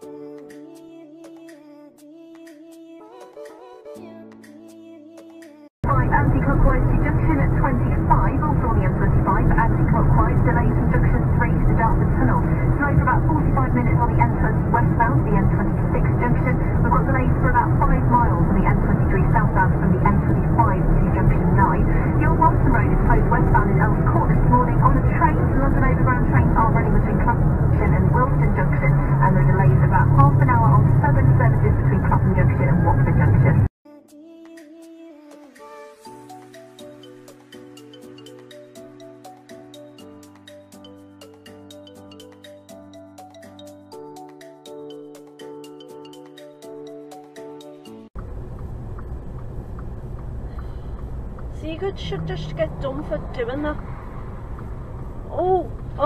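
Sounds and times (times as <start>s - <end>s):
engine and road drone in cab: 5.8s - 33.7s, 48.1s - 56.0s.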